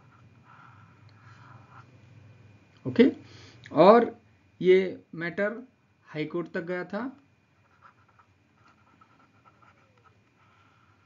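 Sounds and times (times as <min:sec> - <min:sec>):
stylus scratching on pen tablet: 0:00.0 - 0:01.9, 0:07.6 - 0:11.0.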